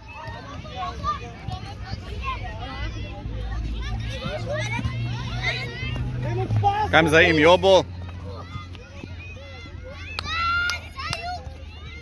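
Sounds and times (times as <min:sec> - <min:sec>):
children shouting: 0:00.0 - 0:12.0.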